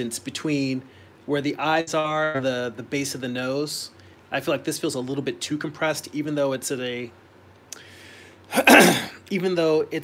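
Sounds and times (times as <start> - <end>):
man drawing a breath: 7.8 - 8.4
man clearing his throat: 8.5 - 9.2.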